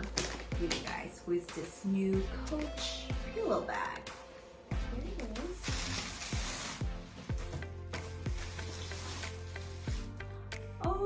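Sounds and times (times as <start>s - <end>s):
soft background music: 0.0s - 11.0s
paper rustling and crinkling: 5.2s - 10.2s.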